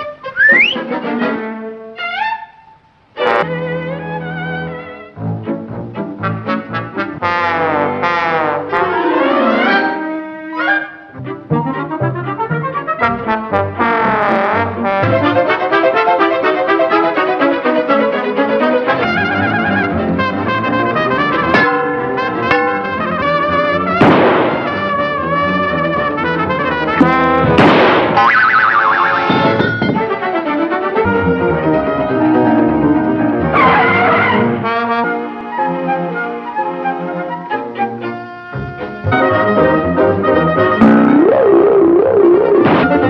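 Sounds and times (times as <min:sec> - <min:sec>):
orchestral cartoon music with brass: 0:00.0 - 0:02.4, 0:03.2 - 0:28.0, 0:28.8 - 0:41.2.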